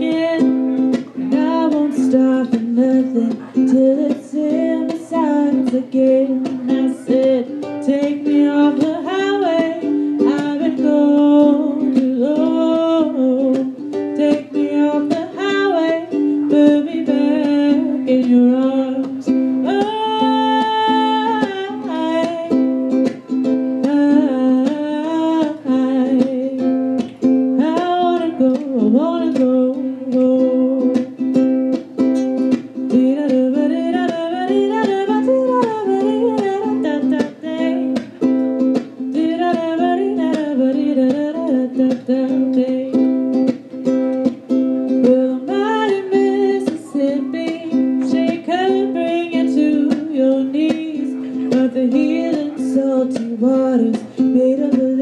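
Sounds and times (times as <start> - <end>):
strummed ukulele: 0.0 - 55.0
woman singing: 0.0 - 55.0.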